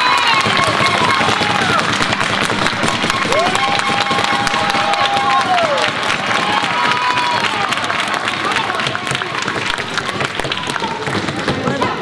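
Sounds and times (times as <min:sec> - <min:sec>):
audience applauding and cheering: 0:00.0 - 0:12.0
long drawn-out shout: 0:03.2 - 0:08.8.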